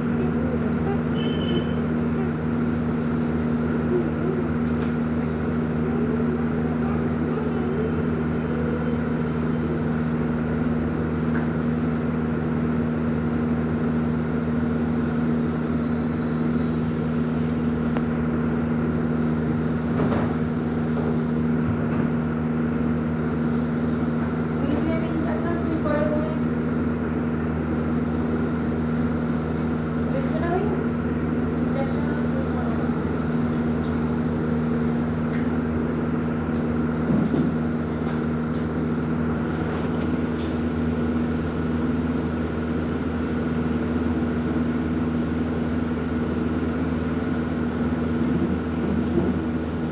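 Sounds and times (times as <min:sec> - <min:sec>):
mechanical hum: 0:00.0 - 0:49.9.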